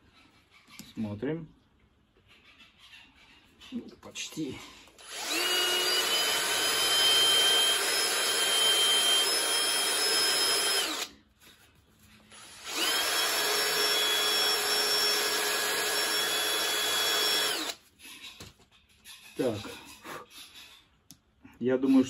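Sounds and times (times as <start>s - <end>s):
power tool whining: 5.0s - 11.1s, 12.3s - 17.8s.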